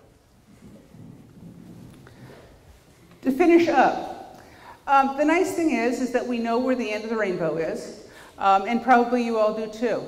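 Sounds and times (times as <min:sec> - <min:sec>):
microphone handling rumble: 0:00.0 - 0:03.1.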